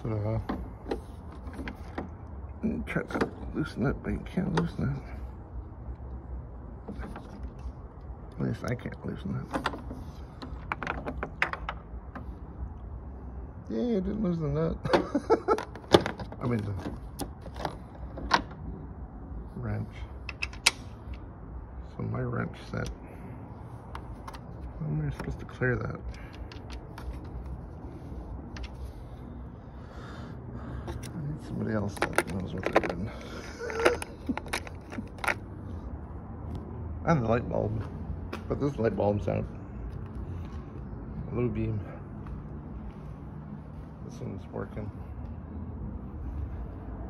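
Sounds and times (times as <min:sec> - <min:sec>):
metal sockets clinking: 0:20.2 - 0:21.2.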